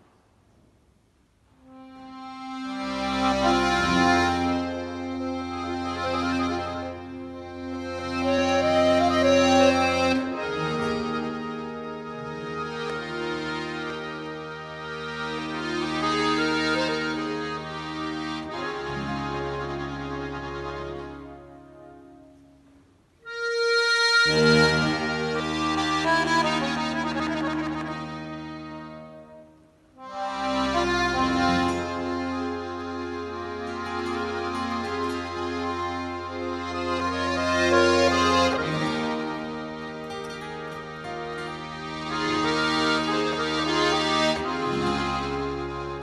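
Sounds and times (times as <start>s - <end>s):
button accordion chords: 1.6s - 46.0s.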